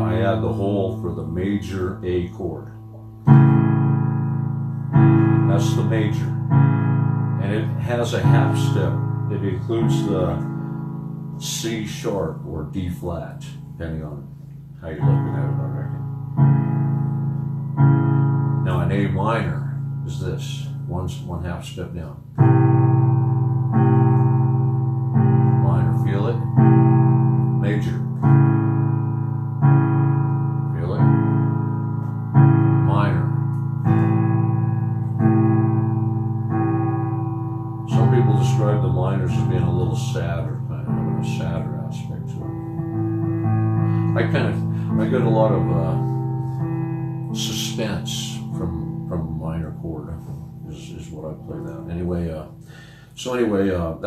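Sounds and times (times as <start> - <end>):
man's voice: 0.0 - 2.8, 5.4 - 6.5, 7.4 - 10.5, 11.4 - 16.0, 18.6 - 22.2, 25.6 - 26.5, 27.6 - 28.2, 30.8 - 31.2, 32.8 - 33.4, 37.9 - 42.6, 44.1 - 46.1, 47.3 - 54.0
electronic piano chords: 0.0 - 54.0.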